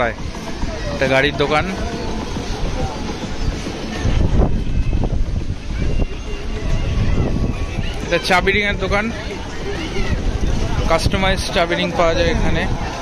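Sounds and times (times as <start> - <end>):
chatter of people: 0.0 - 13.0
wind buffeting microphone: 0.0 - 13.0.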